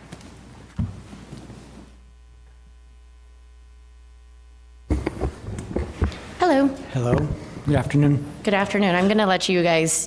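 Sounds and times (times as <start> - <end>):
low electrical mains hum: 0.0 - 10.0
chairs and microphones knocking: 4.9 - 6.3.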